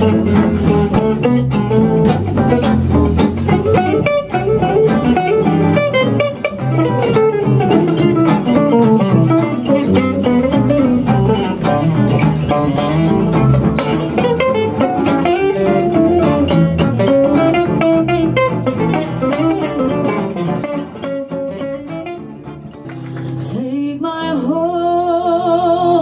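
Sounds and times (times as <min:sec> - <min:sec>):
jazz guitar playing: 0:00.0 - 0:26.0
woman singing: 0:23.2 - 0:26.0.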